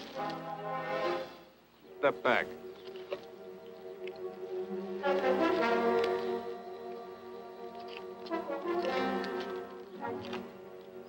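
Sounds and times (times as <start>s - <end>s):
orchestral music led by brass: 0.0s - 11.0s.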